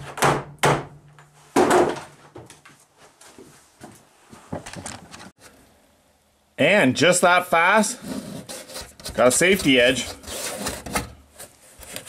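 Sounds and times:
hands scraping sheet metal: 8.0 - 11.2.

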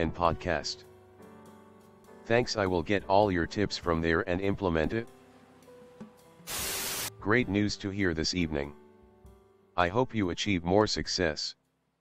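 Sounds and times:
faint background music: 0.0 - 11.9
loud tv static: 6.5 - 7.1.

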